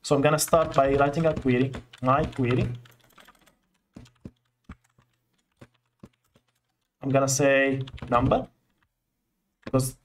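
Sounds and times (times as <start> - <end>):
computer keyboard keystrokes: 0.4 - 7.0, 7.7 - 8.9.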